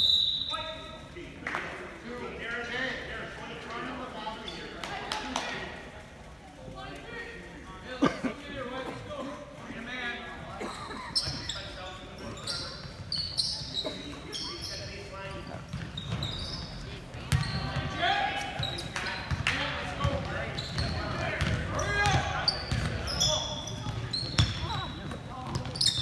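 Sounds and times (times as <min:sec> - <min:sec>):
sneakers squeaking: 0:00.0 - 0:01.0, 0:04.4 - 0:04.9, 0:11.0 - 0:26.0
basketball bouncing: 0:17.2 - 0:18.0, 0:18.6 - 0:23.1, 0:23.8 - 0:26.0.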